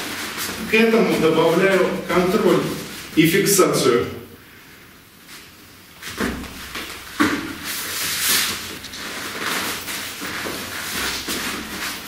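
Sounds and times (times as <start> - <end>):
clothing rustling and scuffing: 0.0 - 3.2, 5.2 - 12.0.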